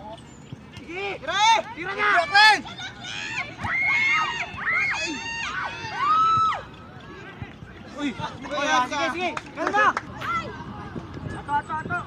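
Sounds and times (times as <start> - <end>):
crowd voices: 0.0 - 12.0
outdoor background noise: 0.0 - 12.0.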